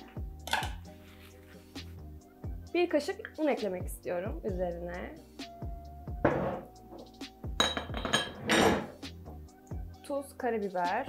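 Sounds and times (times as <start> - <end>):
glass lid put on jar: 0.4 - 0.8
metal spoon clinking glass jar: 0.5 - 0.8, 7.6 - 8.9.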